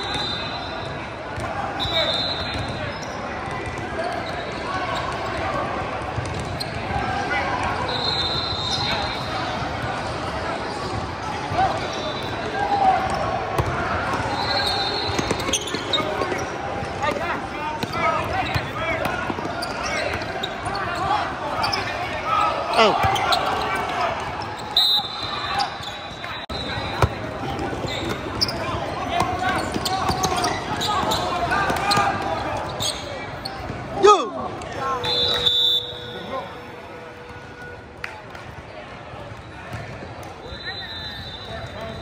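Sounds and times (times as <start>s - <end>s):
basketball bouncing on court: 2.5s - 4.3s, 6.0s - 7.0s, 13.0s - 14.3s.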